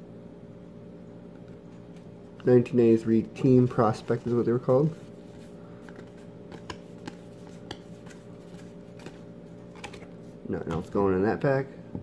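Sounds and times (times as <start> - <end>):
steady low hum: 0.0 - 12.0
trading cards clicking and sliding: 3.5 - 10.9.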